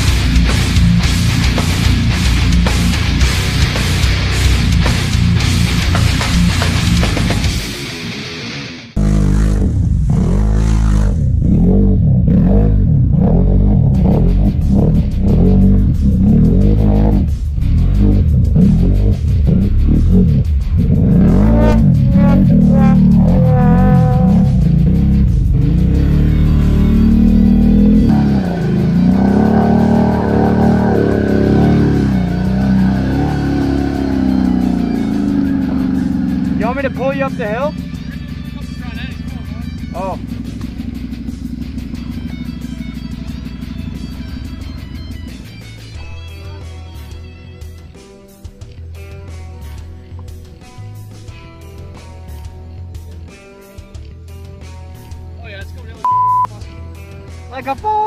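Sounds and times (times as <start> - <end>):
atv engine revving: 0.0 - 8.3, 8.9 - 48.0
heavy metal music: 0.0 - 58.0.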